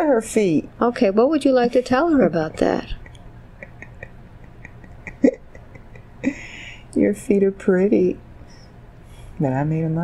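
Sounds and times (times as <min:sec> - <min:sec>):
woman speaking: 0:00.0 - 0:04.1, 0:06.3 - 0:08.3, 0:09.4 - 0:10.0
woman breathing: 0:06.2 - 0:07.0.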